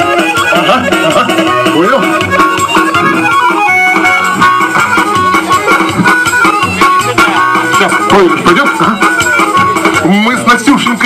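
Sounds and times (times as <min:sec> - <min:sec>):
instrumental folk tune: 0:00.0 - 0:11.0.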